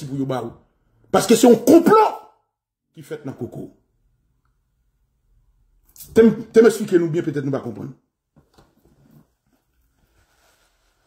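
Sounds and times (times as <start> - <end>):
towel rustling on face: 8.8 - 11.0.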